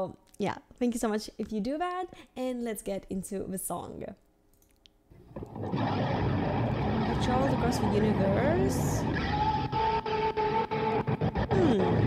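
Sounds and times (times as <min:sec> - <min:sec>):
motorbike engines revving: 0:05.7 - 0:09.7.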